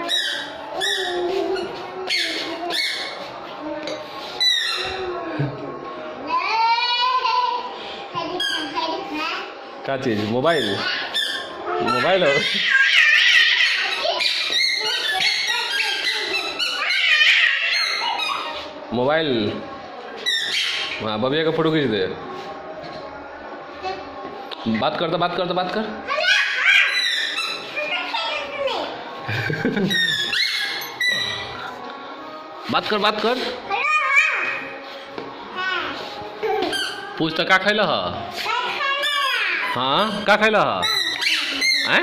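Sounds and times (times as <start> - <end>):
toddlers babbling and squealing: 0.0 - 9.8, 10.5 - 18.9, 26.0 - 29.2, 33.5 - 37.2, 38.3 - 42.0.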